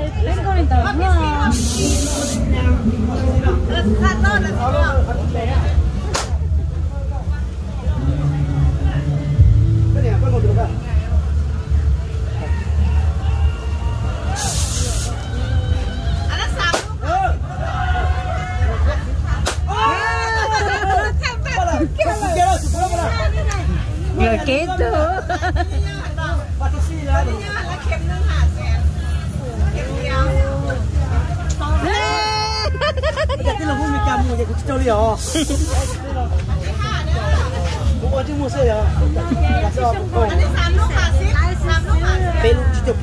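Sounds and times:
people talking: 0.0 - 13.0, 18.6 - 43.0
burst of hissing: 1.5 - 2.5, 14.3 - 15.2, 22.1 - 23.1, 35.2 - 36.0
steady low hum: 5.1 - 12.4.

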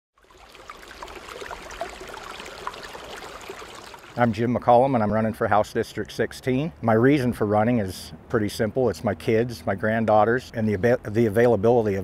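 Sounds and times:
river water running over rocks: 0.2 - 4.6.

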